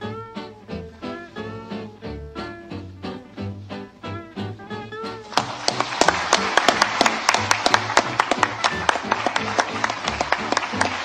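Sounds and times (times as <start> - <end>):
background music: 0.0 - 11.0
crowd applauding: 5.2 - 11.0.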